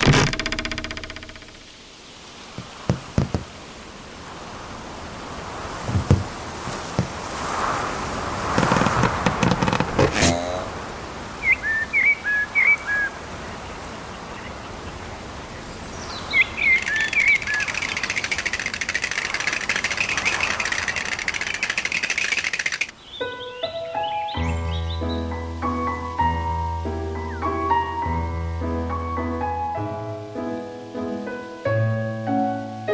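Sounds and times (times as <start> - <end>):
short falling squeak: 0.0 - 1.5, 8.5 - 10.7
rustle ending in sharp snap: 5.7 - 10.6, 16.3 - 22.9
small bird chirping: 11.4 - 25.2.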